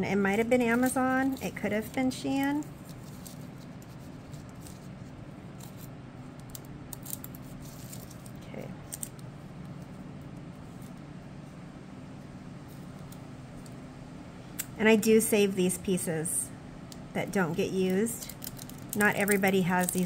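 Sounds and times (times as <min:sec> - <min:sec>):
steady low hum: 0:00.0 - 0:20.0
small scissors snipping foil: 0:05.6 - 0:09.2, 0:17.9 - 0:20.0.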